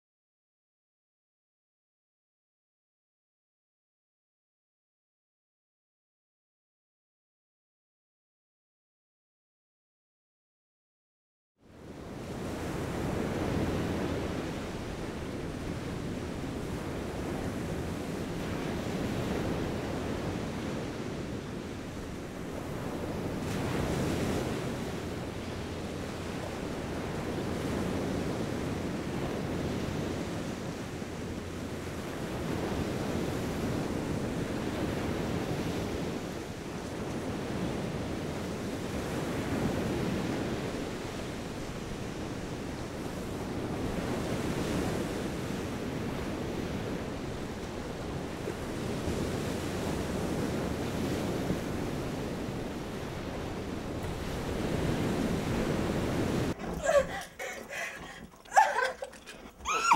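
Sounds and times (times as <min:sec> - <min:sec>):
ocean surf washing onto beach: 0:11.7 - 0:59.9
wind buffeting microphone: 0:11.8 - 0:59.9.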